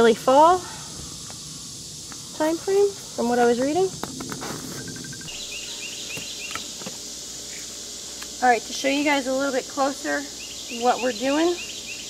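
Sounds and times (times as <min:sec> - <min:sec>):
high insect drone: 0:00.0 - 0:12.0
bird chirping: 0:04.8 - 0:06.9, 0:10.4 - 0:12.0.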